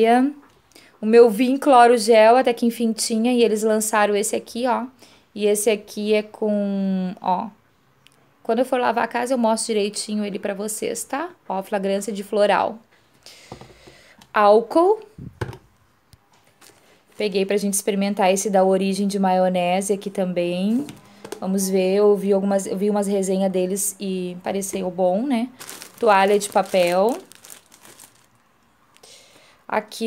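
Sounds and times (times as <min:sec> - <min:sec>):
plastic wrapping crinkling: 0:16.4 - 0:17.5, 0:24.5 - 0:29.0.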